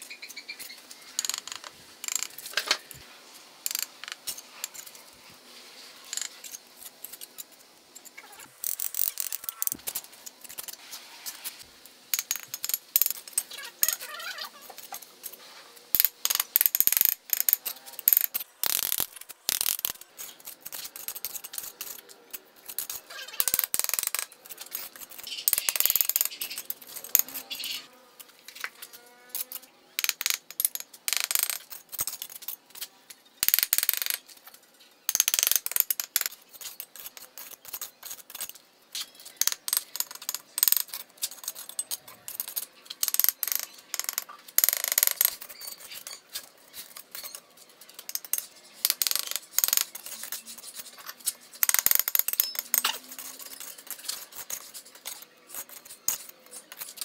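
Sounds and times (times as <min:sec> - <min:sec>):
trowel scraping and tapping bricks: 0:35.1 - 0:57.0.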